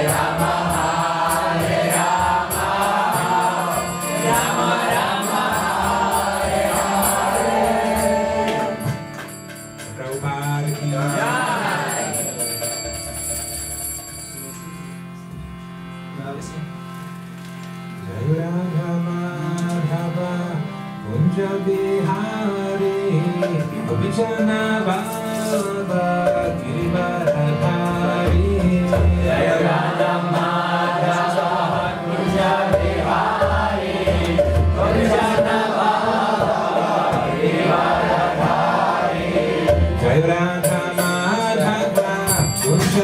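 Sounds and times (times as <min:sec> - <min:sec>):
hand cymbals ringing: 0:00.0 - 0:15.2, 0:40.6 - 0:43.0
harmonium chord: 0:00.0 - 0:43.0
man singing slow melody: 0:18.0 - 0:30.3, 0:40.0 - 0:43.0.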